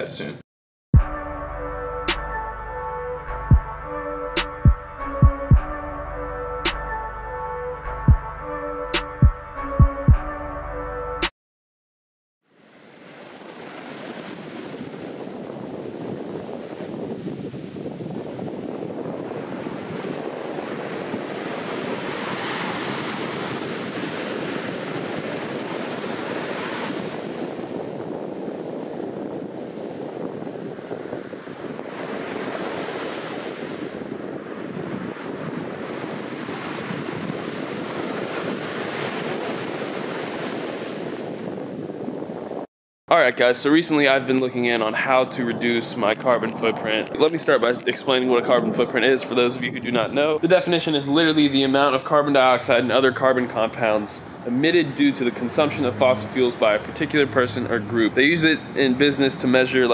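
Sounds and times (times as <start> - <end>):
ocean surf breaking: 12.6 - 42.7, 43.4 - 59.9
wind buffeting microphone: 13.3 - 42.7, 43.6 - 51.7.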